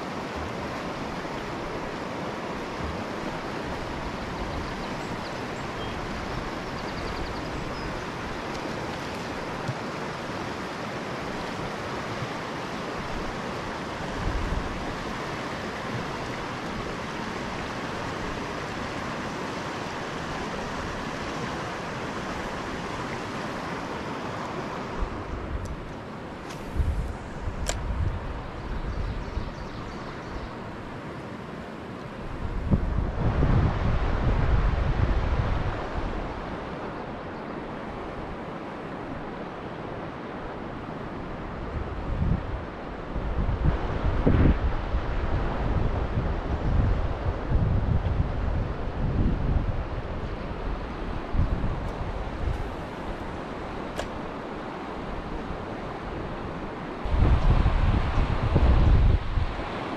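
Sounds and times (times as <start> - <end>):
river water rushing over rocks: 0.0 - 29.2, 29.8 - 59.9
wind buffeting microphone: 24.9 - 31.0, 32.2 - 37.2, 41.2 - 59.9.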